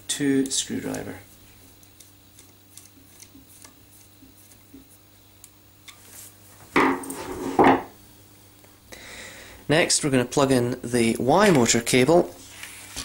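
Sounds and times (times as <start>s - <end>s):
tool clattering knocks: 6.8s - 7.9s.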